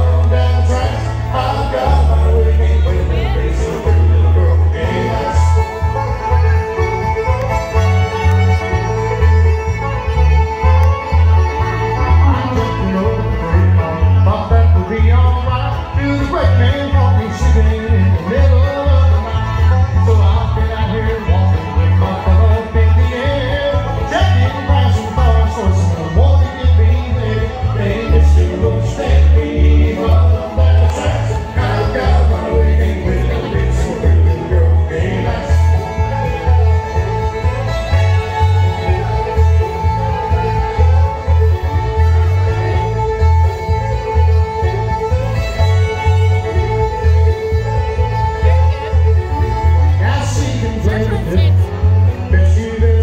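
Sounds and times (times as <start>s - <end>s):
acoustic guitar: 0.0s - 53.0s
banjo: 0.0s - 53.0s
bass guitar steady pulse: 0.0s - 53.0s
fiddle: 0.0s - 53.0s.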